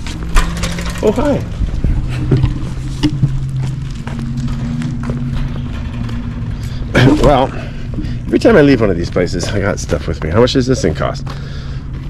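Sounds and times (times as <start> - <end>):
motor humming: 0.0 - 9.9.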